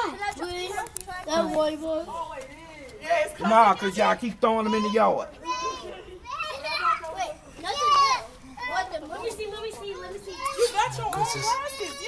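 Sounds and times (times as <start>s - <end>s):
children talking and shouting: 0.0s - 12.0s.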